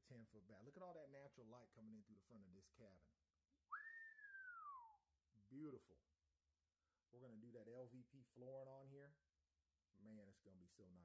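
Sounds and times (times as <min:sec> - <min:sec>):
person whistling: 0:03.7 - 0:05.1.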